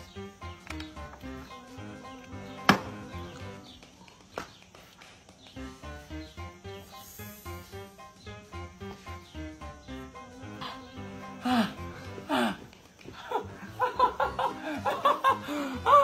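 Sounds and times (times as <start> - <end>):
background music with steady beat: 0.0 - 16.0.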